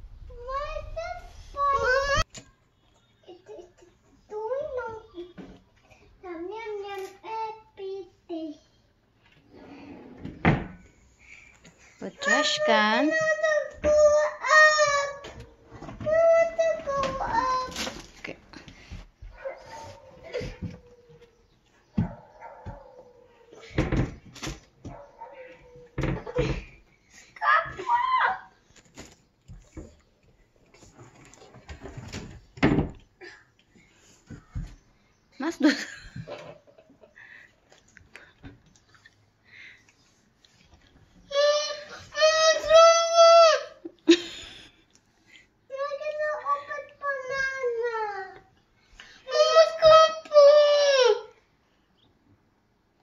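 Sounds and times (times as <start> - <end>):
toddler crying: 12.3 - 17.8, 41.3 - 43.8, 49.3 - 51.4.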